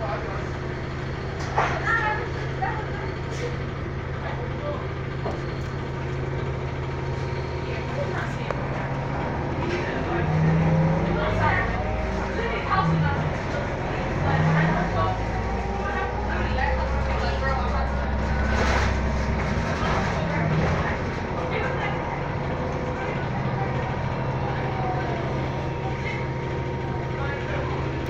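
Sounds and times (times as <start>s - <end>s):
bus drivetrain drone: 0.0s - 28.0s
passenger voices: 0.0s - 28.0s
thin steady whine: 23.0s - 28.0s.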